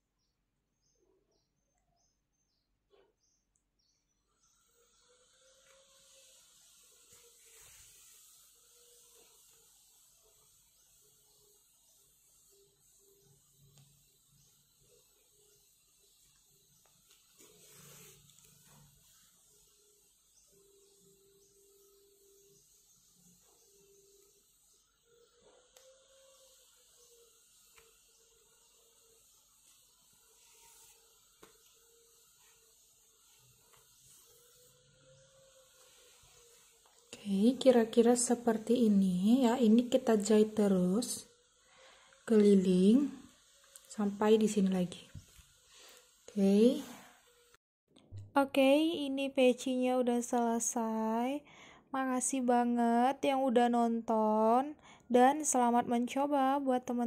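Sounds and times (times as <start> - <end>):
faint steady hiss: 3.5 - 47.6.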